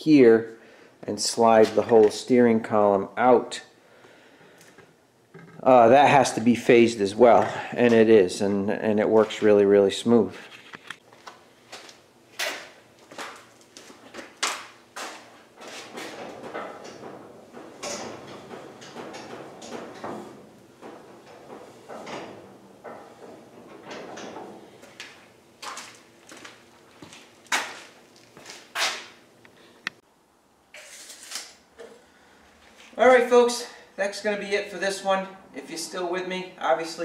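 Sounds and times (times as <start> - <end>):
knocks and clunks: 15.0 - 25.8.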